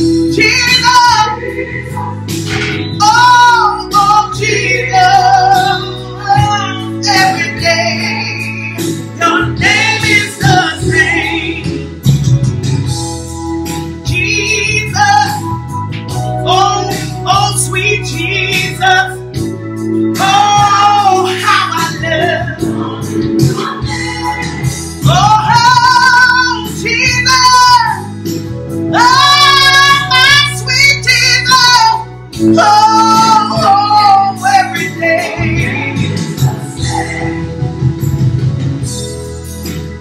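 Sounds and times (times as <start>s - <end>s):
woman singing gospel: 0.0s - 12.0s, 14.0s - 28.3s, 28.9s - 37.7s
backing music with bass line: 0.0s - 40.0s
instrumental accompaniment: 0.0s - 40.0s.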